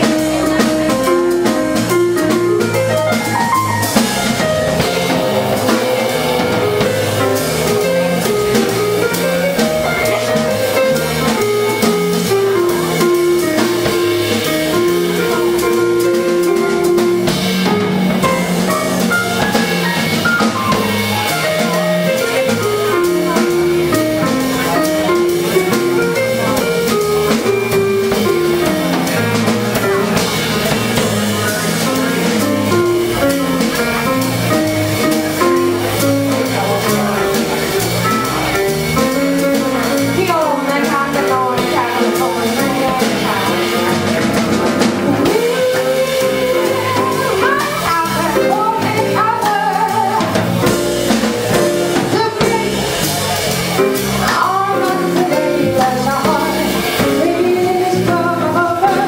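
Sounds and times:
bass line: 0.0 - 59.0
drum kit keeping time: 0.0 - 59.0
electric guitar: 0.3 - 40.8, 41.5 - 59.0
woman singing: 40.0 - 44.4, 45.1 - 50.5, 52.0 - 52.9, 54.2 - 59.0.

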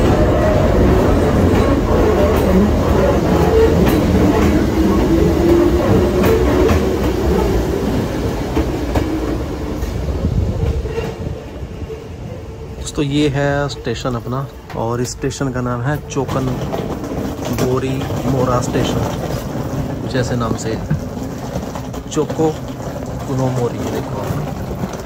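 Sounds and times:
train wheel clicks: 0.0 - 11.2, 14.2 - 25.0
train rumble on board: 0.0 - 25.0.

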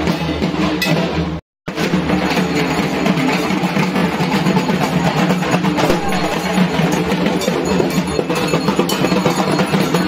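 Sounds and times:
barrel drums beaten fast: 0.0 - 10.0
crowd walking and talking: 0.0 - 10.0.

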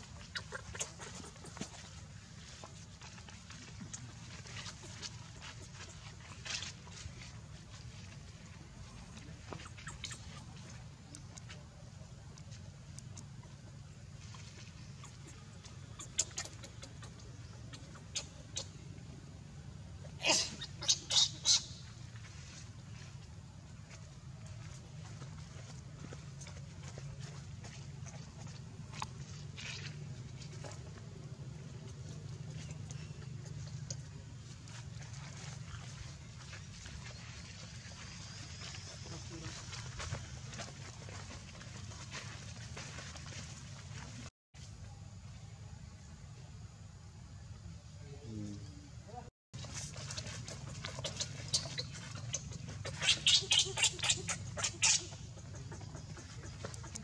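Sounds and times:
baby monkey squeaking: 0.0 - 1.8, 9.5 - 10.7, 15.0 - 18.7, 20.2 - 21.9, 50.6 - 57.0.

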